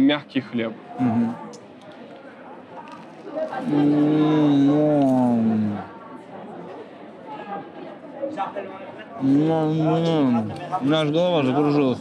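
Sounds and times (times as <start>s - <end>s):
man humming mmm with full mouth: 3.6s - 5.9s, 9.2s - 10.5s.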